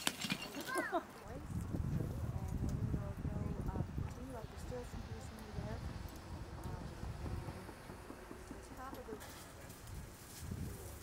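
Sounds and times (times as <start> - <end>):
low rumbling noise: 1.3 - 11.0.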